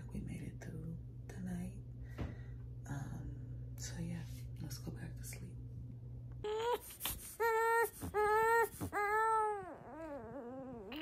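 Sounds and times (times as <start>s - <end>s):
woman whispering: 0.0s - 1.9s, 2.9s - 5.6s
steady low hum: 0.0s - 11.0s.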